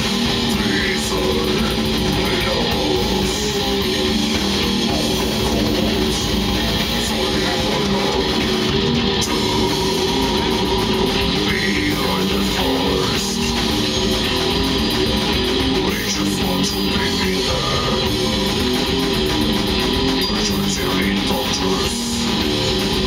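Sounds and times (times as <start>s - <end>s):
death metal band playing: 0.0s - 23.0s.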